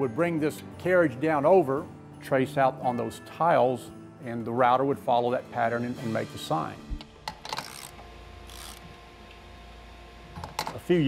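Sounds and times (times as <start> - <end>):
machine hum: 6.9 - 11.0.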